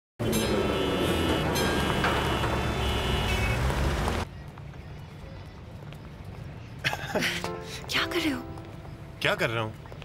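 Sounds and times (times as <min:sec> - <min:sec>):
car horns honking: 0:00.2 - 0:04.2
low rumble of engines: 0:00.2 - 0:07.0.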